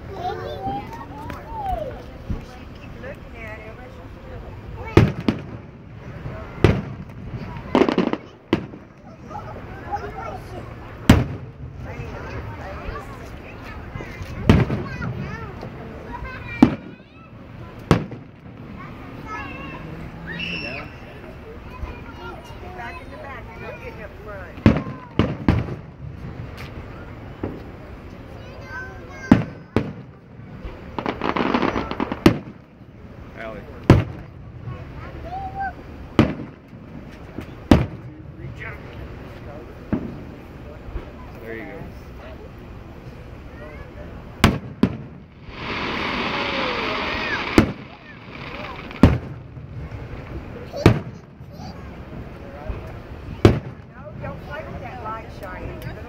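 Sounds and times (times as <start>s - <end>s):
fireworks booming: 4.4s - 28.3s, 28.9s - 41.2s, 44.0s - 56.0s
loud steady hiss: 42.2s - 55.4s.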